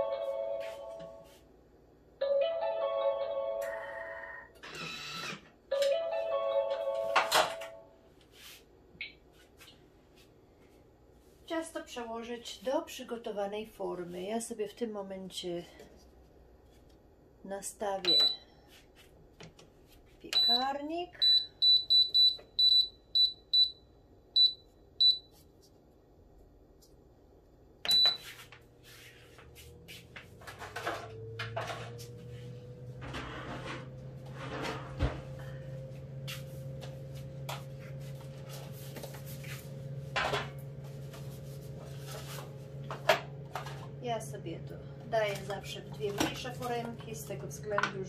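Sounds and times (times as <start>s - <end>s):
oven control panel beeps: 18.0s - 18.4s, 20.3s - 23.8s, 27.8s - 28.2s
oven running hum: 25.8s - 48.0s.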